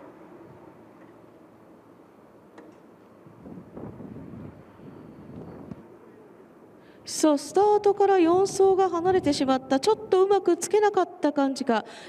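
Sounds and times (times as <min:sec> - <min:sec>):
wind buffeting microphone: 0:03.2 - 0:05.9, 0:08.0 - 0:10.3.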